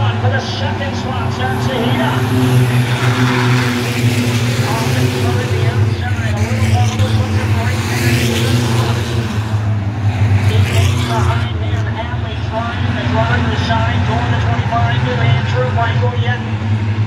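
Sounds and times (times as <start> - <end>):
race car engines: 0.0 - 17.0.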